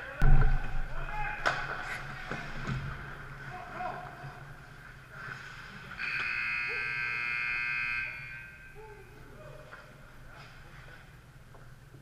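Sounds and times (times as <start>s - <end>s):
loud electric buzzer: 6.0s - 8.6s.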